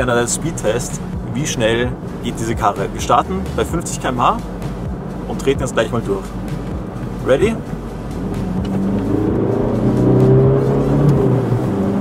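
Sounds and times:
car engine accelerating: 0.0s - 12.0s.

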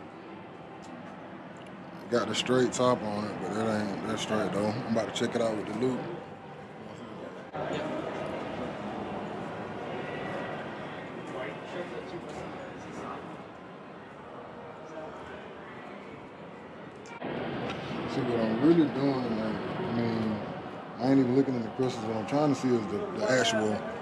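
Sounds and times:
faint indistinct voices: 0.0s - 24.0s.

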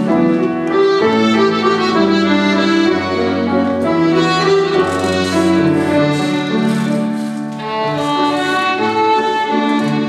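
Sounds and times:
accordion: 0.0s - 10.0s
piano accompaniment: 0.0s - 10.0s
violin: 0.0s - 10.0s.

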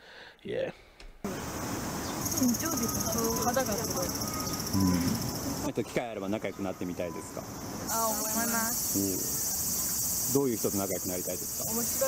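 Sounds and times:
insect chorus: 1.3s - 12.0s
woman speaking: 2.3s - 4.3s, 7.9s - 8.8s, 11.7s - 12.0s.

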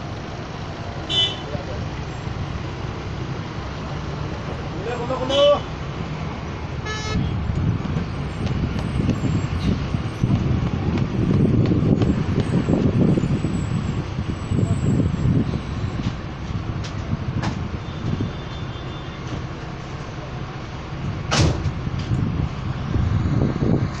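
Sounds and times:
bus engine and road rumble: 0.0s - 24.0s
sharp knock: 21.3s - 21.8s.

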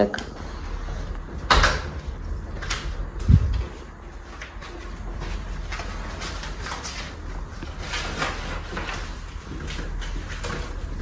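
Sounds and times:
rustling: 2.6s - 11.0s.

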